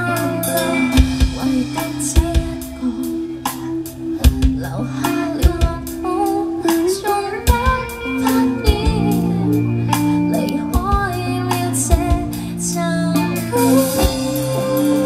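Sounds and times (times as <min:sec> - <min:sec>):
rock band playing: 0:00.0 - 0:15.0
woman singing: 0:00.0 - 0:15.0.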